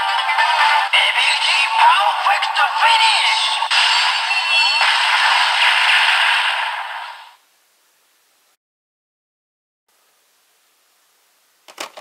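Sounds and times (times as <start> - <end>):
electronic toy noisy rush: 3.7 - 7.4.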